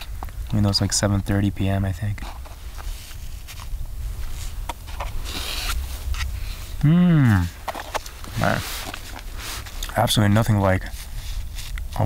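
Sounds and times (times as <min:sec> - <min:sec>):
low steady rumble: 0:00.0 - 0:12.0
pouch crinkling scrape: 0:02.3 - 0:06.7, 0:07.6 - 0:10.2.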